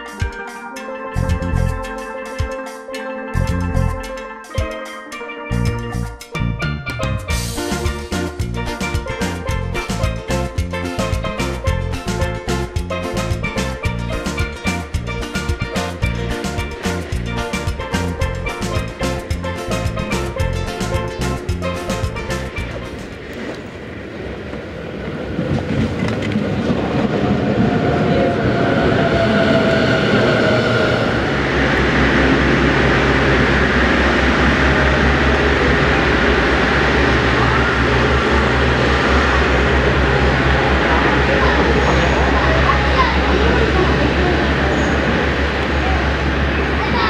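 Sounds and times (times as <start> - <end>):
diesel railcar engine: 1.2 - 2.0, 3.4 - 4.0, 5.5 - 47.0.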